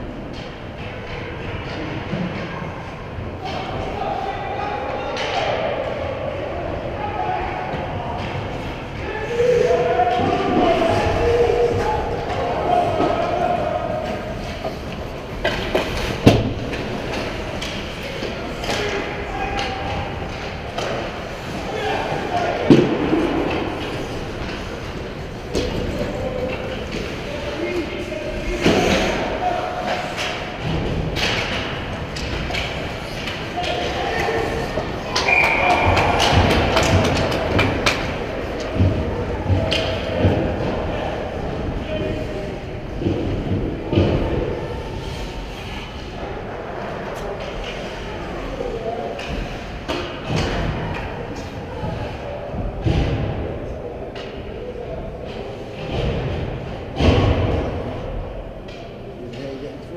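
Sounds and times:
voices calling out: 0:33.2 - 0:42.5.

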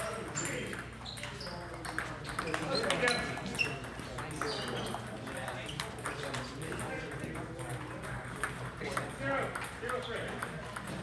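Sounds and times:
table tennis ball rally: 0:00.0 - 0:11.0.

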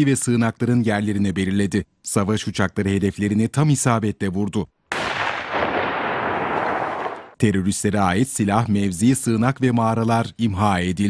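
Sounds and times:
bomb explosion blast: 0:04.9 - 0:07.4.

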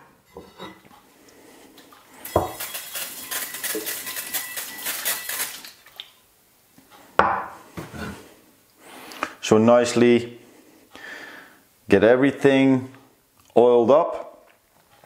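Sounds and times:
cast iron plates clanking: 0:00.0 - 0:00.9.

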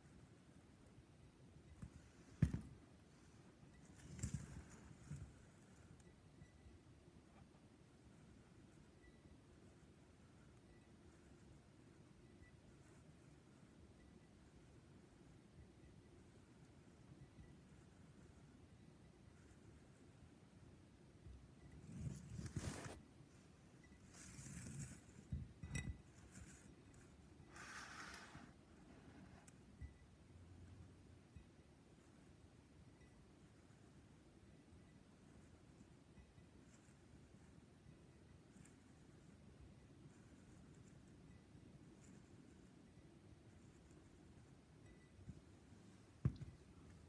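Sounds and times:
glass scraping on tabletop: 0:21.8 - 0:23.0
glass clink: 0:25.3 - 0:26.2.

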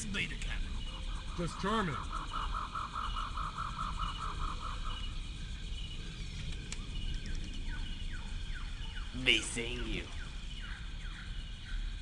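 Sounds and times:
rapidly pulsing animal call: 0:00.0 - 0:06.0.

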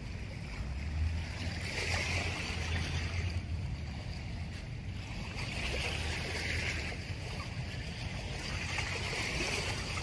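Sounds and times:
small waves washing: 0:00.0 - 0:10.0.

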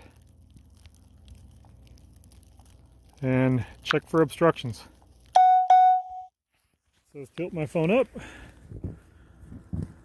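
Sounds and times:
electronic beeps: 0:05.4 - 0:06.3.

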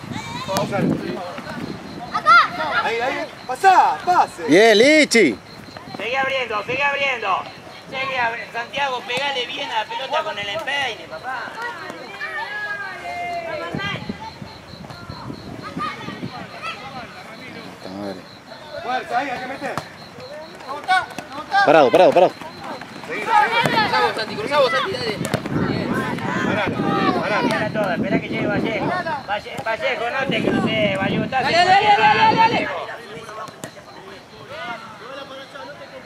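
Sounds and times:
people shouting: 0:02.0 - 0:04.6, 0:11.1 - 0:14.4, 0:18.5 - 0:29.3, 0:31.4 - 0:33.3.

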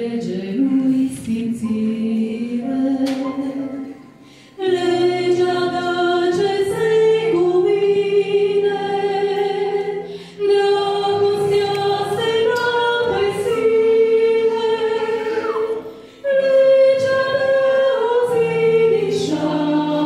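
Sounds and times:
two women singing a hymn: 0:00.0 - 0:20.0.

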